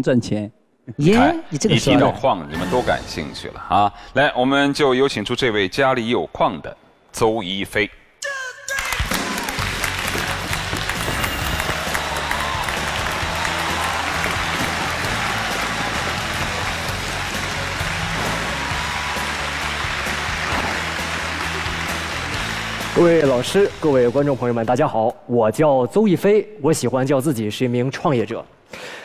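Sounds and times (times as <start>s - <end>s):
audience applauding: 8.8s - 24.3s
entrance music: 9.1s - 24.9s.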